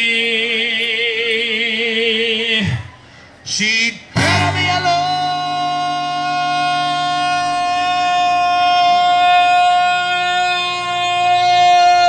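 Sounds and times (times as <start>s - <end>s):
man singing a high note: 3.5s - 12.0s
strummed acoustic guitar chord: 4.2s - 12.0s.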